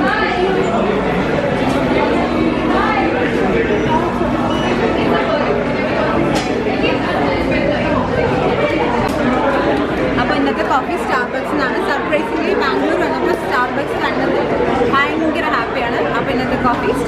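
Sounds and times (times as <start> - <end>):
chatter of people: 0.0 - 17.0.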